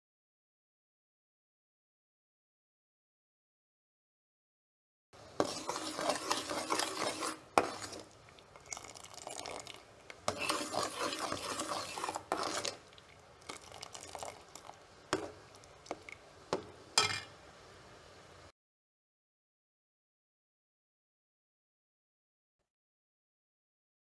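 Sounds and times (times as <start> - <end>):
spoon scraping metal pan: 5.3 - 12.9, 16.6 - 17.3.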